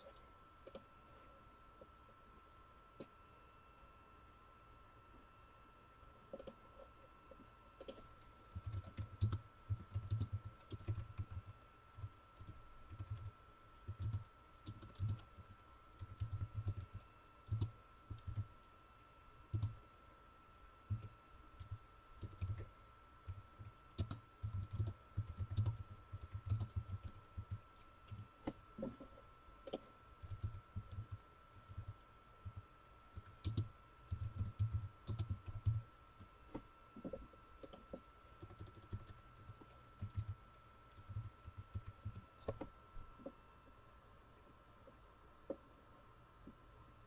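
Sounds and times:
typing on a keyboard: 0.1s - 0.8s, 6.3s - 6.6s, 7.8s - 18.6s, 19.5s - 19.8s, 20.9s - 29.0s, 29.6s - 36.3s, 37.0s - 42.7s.

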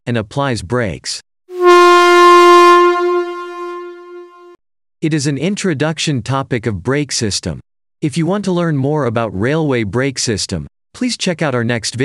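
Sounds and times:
locomotive air horn blast: 1.5s - 4.6s.

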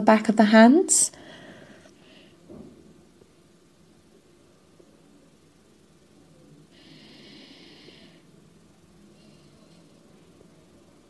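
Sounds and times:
slow breath: 1.2s - 2.4s, 6.7s - 8.3s.

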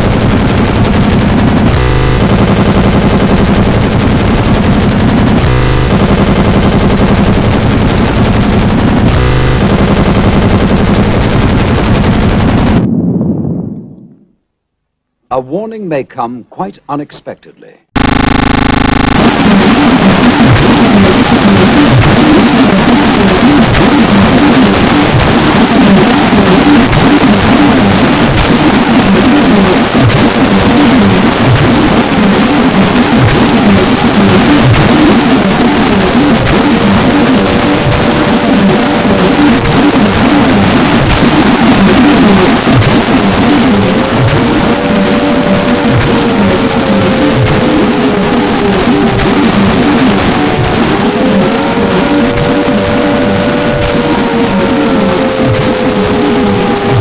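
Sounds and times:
distorted static noise: 0.0s - 57.0s.

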